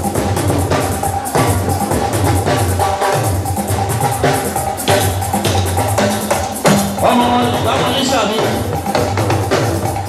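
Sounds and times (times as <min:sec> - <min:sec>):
drums and percussion: 0:00.0 - 0:10.0
live band music over speakers: 0:00.0 - 0:10.0.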